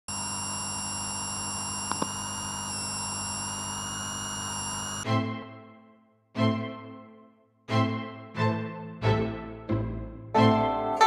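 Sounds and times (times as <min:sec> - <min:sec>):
electronic static hiss: 0:00.1 - 0:05.0
high steady whining tones: 0:00.1 - 0:05.1.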